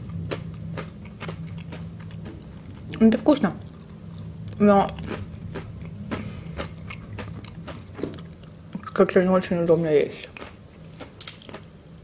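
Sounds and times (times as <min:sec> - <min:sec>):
crunching and chewing chips: 0:00.0 - 0:09.1, 0:10.0 - 0:11.8.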